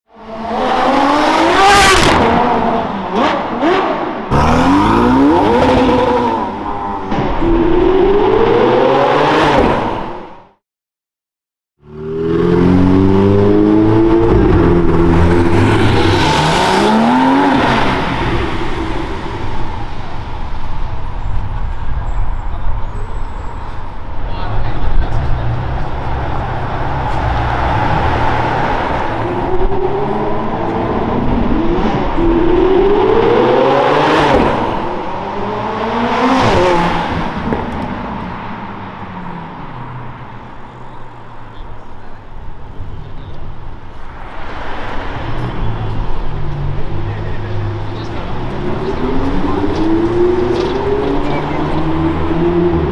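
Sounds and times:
traffic noise: 0.1 - 10.6, 11.8 - 52.9
supercar engines accelerating: 0.2 - 10.2, 11.9 - 21.1, 21.7 - 43.6, 44.5 - 52.9.

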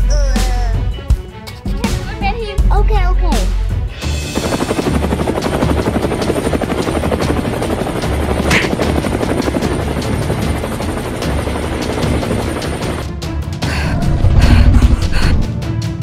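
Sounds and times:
helicopter rotor chopping: 4.0 - 15.6.

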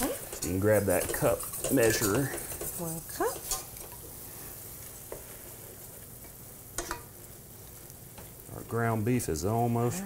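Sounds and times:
meat sizzling in a skillet: 0.0 - 10.0.

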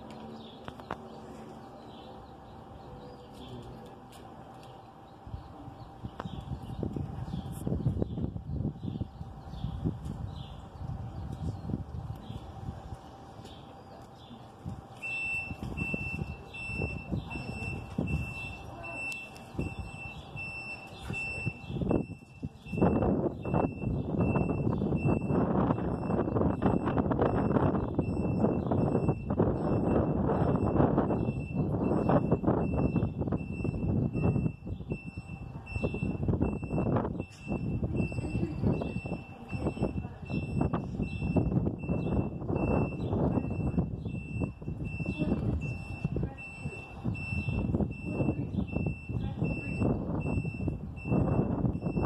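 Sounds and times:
wind gusting across microphone: 4.9 - 52.0
high electronic beep: 15.0 - 52.0.

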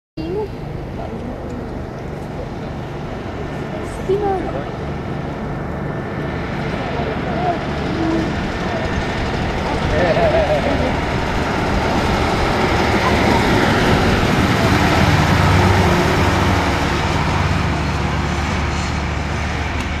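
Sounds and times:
truck engine driving past: 0.3 - 20.0.

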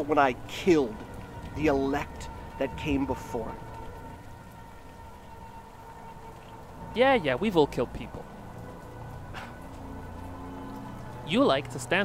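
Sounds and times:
steady rain: 0.0 - 12.0.

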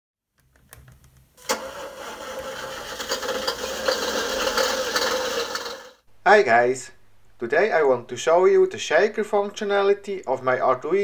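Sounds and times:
truck engine starting and running: 1.4 - 5.9.

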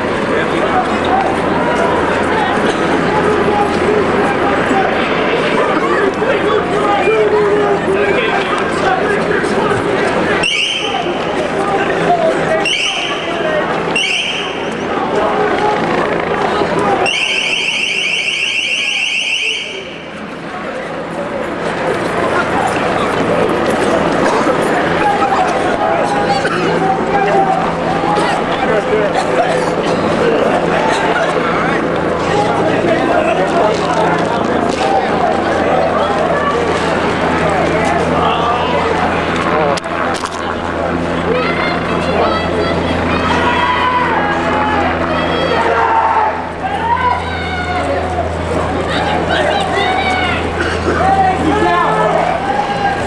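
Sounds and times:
low engine-like drone: 0.0 - 53.0
scattered voices: 0.0 - 53.0
electronic warbling alarm: 17.0 - 20.0.

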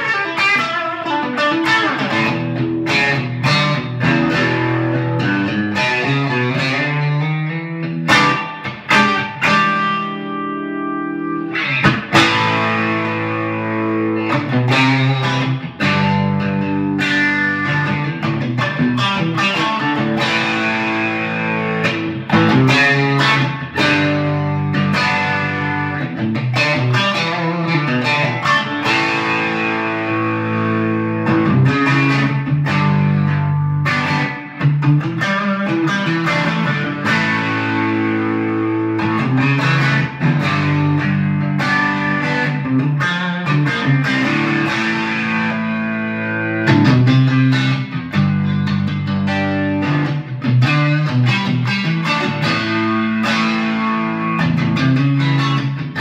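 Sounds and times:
electric guitar with reverb: 0.0 - 56.0.

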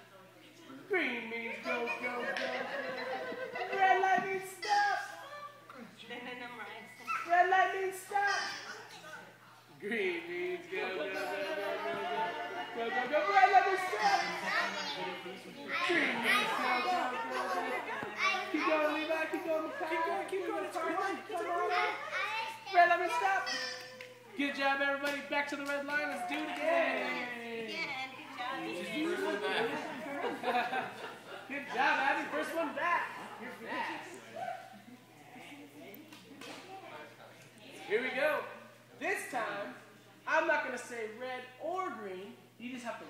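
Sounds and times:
adults chattering: 0.0 - 40.5
toddlers' voices: 7.0 - 7.4, 11.0 - 24.4
person speaking loudly: 9.8 - 22.0, 22.7 - 23.8
child calling out and babbling: 23.2 - 24.3.

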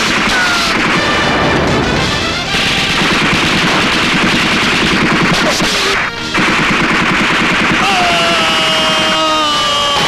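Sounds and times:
automatic gunfire: 0.0 - 9.4.

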